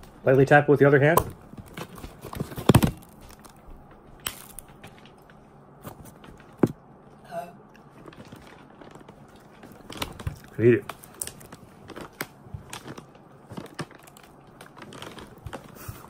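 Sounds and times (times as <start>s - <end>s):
crab shell cracking: 4.2s - 5.2s, 8.6s - 15.6s.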